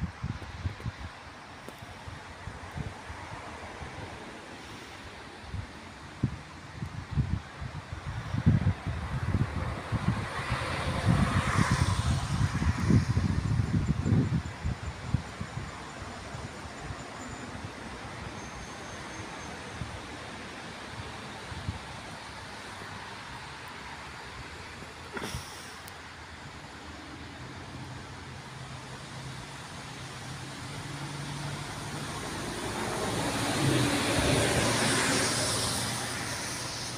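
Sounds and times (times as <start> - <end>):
wind on microphone: 0.0 - 4.4, 5.4 - 17.8
low traffic hum: 0.0 - 36.9
vehicle passing: 28.3 - 36.9.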